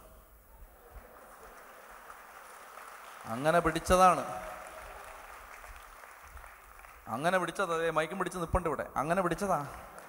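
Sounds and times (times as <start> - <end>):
room background hiss: 0.0 - 10.0.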